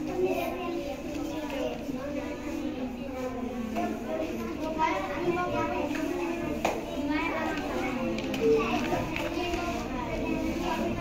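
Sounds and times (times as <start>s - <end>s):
children chattering: 0.0s - 11.0s.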